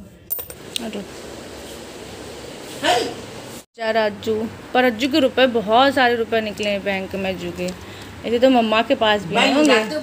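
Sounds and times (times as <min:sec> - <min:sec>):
metal jewelry clinking: 0:00.3 - 0:00.6.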